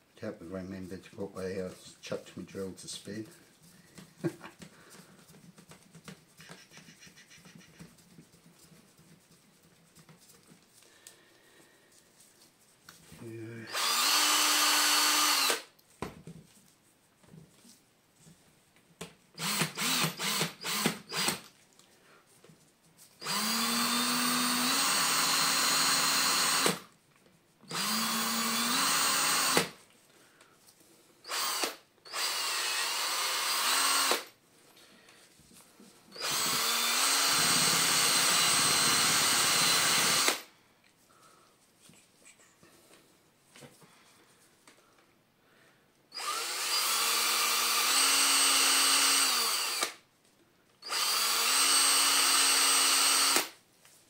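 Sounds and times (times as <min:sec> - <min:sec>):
cordless drill whining: 0:13.7 - 0:15.7, 0:19.4 - 0:21.5, 0:23.2 - 0:26.9, 0:27.7 - 0:29.8, 0:31.2 - 0:34.4, 0:36.1 - 0:40.5, 0:46.1 - 0:50.0, 0:50.8 - 0:53.6.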